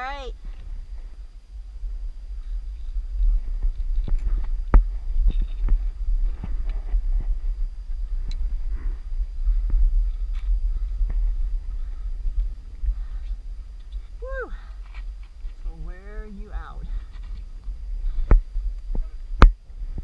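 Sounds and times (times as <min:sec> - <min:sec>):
low rumble: 0:00.0 - 0:20.0.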